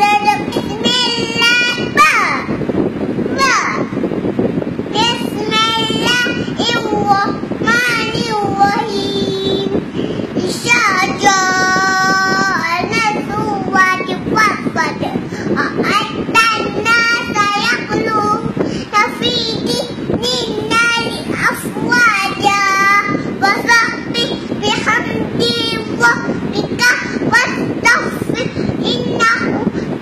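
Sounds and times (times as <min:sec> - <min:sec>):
girl chanting melodically: 0:00.0 - 0:04.1, 0:04.9 - 0:30.0.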